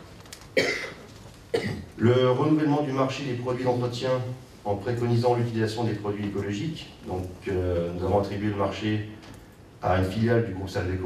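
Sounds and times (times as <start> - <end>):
person coughing: 0.6 - 1.9.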